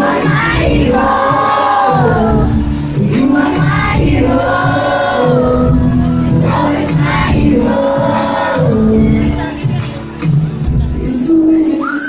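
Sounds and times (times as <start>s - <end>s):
live pop band: 0.0s - 12.0s.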